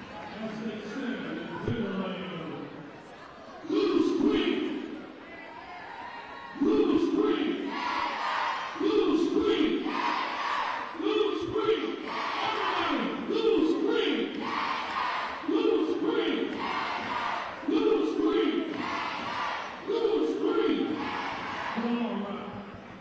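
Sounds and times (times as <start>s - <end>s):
group chanting in unison: 6.5s - 21.8s.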